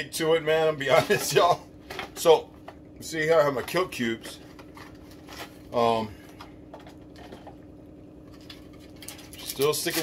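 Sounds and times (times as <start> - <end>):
low room hum: 0.0 - 10.0.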